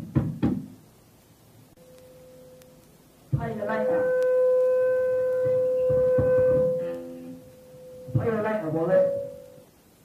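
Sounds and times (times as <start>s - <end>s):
electric guitar feedback: 1.8s - 9.7s.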